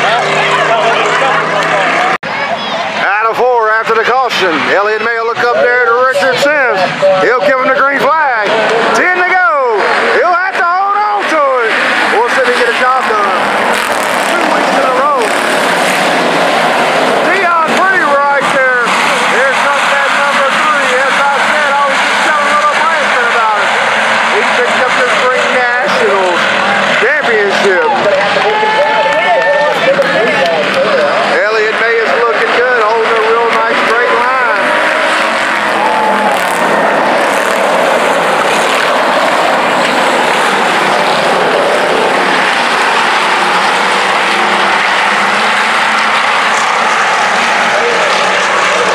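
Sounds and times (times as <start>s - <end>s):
race car engines revving: 0.0s - 48.9s.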